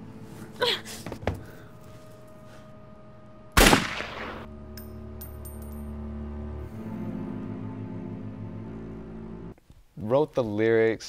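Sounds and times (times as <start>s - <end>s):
low musical drone: 0.0s - 9.6s
handgun shot: 3.6s - 4.5s.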